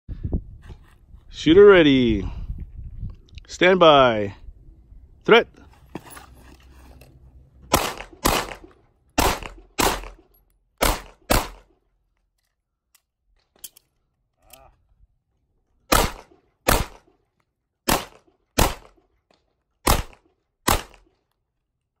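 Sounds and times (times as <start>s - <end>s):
pistol shots: 7.7s - 10.2s, 10.8s - 11.7s, 15.9s - 17.1s, 17.9s - 19.0s, 19.8s - 21.1s.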